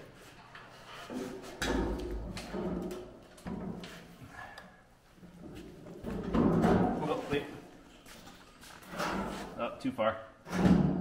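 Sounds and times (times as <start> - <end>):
steel frame knocking and thudding: 5.3 - 7.2.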